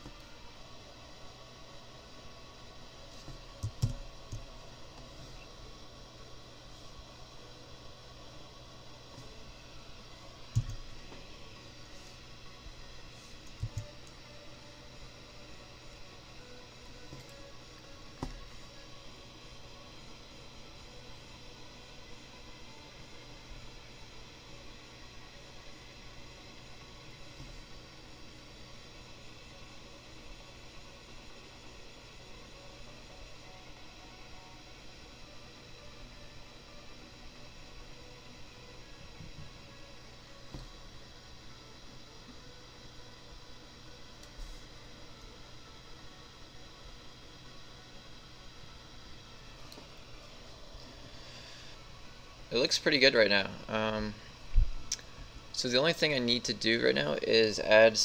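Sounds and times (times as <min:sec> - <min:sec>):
faint hiss and hum: 0:00.0 - 0:58.0.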